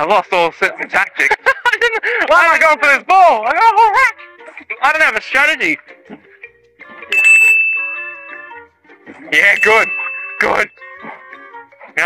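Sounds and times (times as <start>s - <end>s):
bell-like metallic ring: 7.1s - 8.6s, 9.5s - 10.8s.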